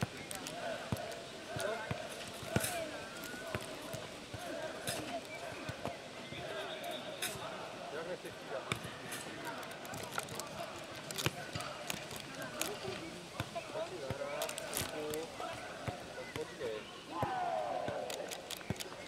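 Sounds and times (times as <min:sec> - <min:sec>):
boys' voices and calls: 0:00.0 - 0:19.0
ball kicked with sharp thuds: 0:17.1 - 0:18.1.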